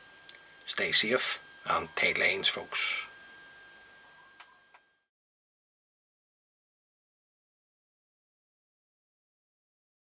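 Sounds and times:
thin steady high tone: 0:00.0 - 0:05.1.

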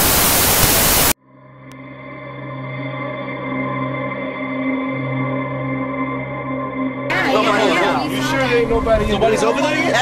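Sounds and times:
white noise static: 0:00.0 - 0:01.2.

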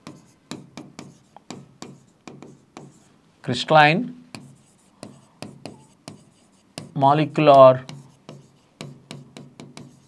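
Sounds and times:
chalk tapping and scraping: 0:00.0 - 0:03.2, 0:04.1 - 0:10.0.

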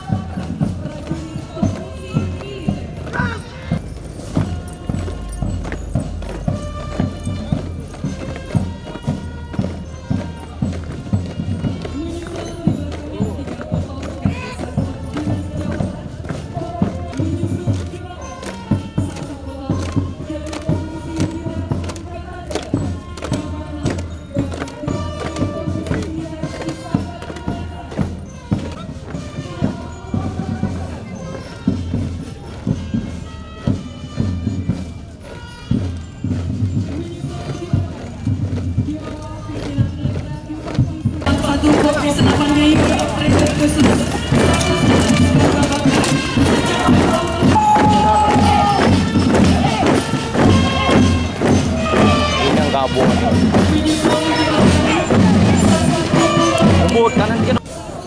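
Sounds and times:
boots marching in step: 0:00.0 - 0:57.6
military march music: 0:00.0 - 0:58.0.

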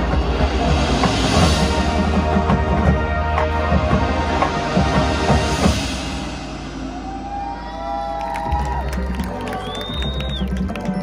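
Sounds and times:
marching band playing: 0:00.0 - 0:11.0
crowd cheering and whooping: 0:06.8 - 0:11.0
high whistle-like cheer: 0:06.8 - 0:11.0.

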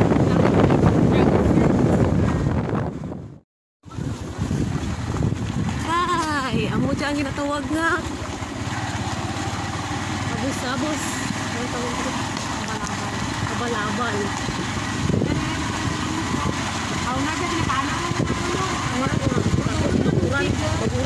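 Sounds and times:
small engine running: 0:03.9 - 0:21.0
people talking: 0:05.8 - 0:08.1, 0:10.2 - 0:21.0.

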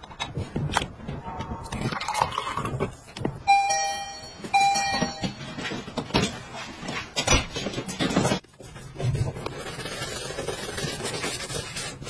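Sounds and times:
electronic door chime: 0:03.5 - 0:05.6.

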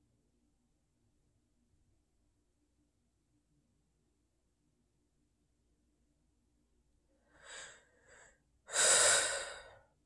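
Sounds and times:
man breathing: 0:07.3 - 0:09.8.

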